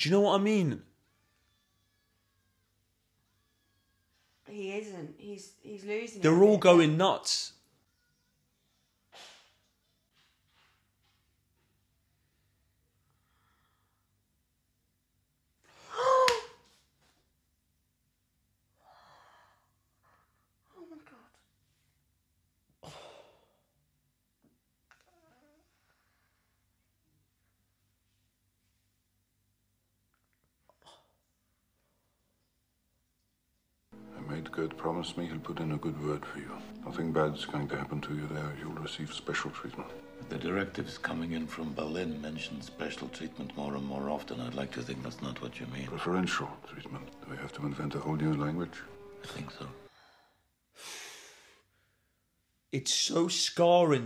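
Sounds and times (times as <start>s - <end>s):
person sighing: 15.7s - 16.6s, 22.8s - 23.6s.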